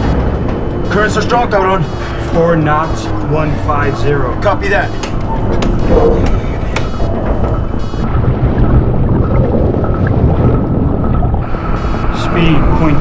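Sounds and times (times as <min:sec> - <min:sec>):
sharp clicks: 0:00.0 - 0:08.1
deep underwater rumble: 0:00.0 - 0:13.0
film score music: 0:00.0 - 0:13.0.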